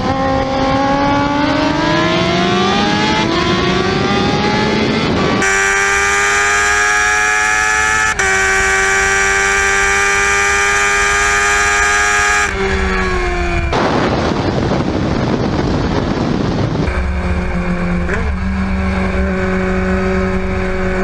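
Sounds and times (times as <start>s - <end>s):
high whining engine note: 0.0s - 14.5s, 16.8s - 21.0s
motorcycle engine accelerating: 0.0s - 21.0s.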